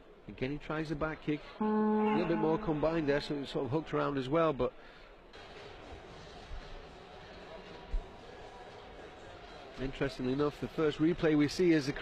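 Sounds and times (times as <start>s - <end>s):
competition hall background noise: 0.0s - 12.0s.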